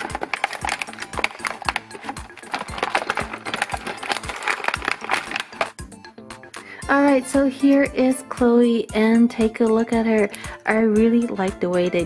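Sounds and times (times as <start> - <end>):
plastic packaging crackling: 0.0 - 5.8
background music: 0.0 - 12.0.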